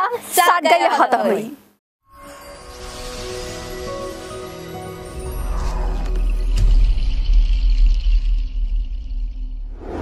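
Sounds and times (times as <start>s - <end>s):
jingle music: 2.0s - 6.5s
whoosh: 2.8s - 10.0s.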